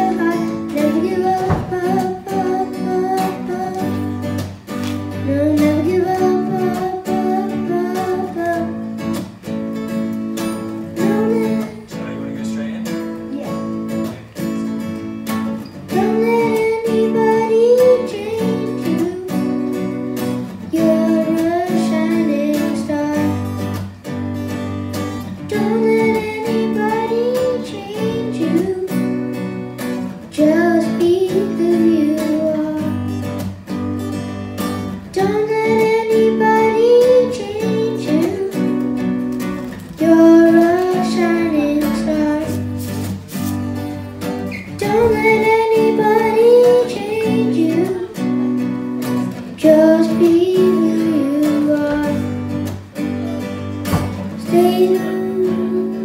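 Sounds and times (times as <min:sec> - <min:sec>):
boy singing: 0:00.0 - 0:09.2, 0:10.4 - 0:12.4, 0:15.8 - 0:23.9, 0:25.2 - 0:33.5, 0:34.8 - 0:43.4, 0:44.0 - 0:56.0
acoustic guitar strumming: 0:00.0 - 0:56.0.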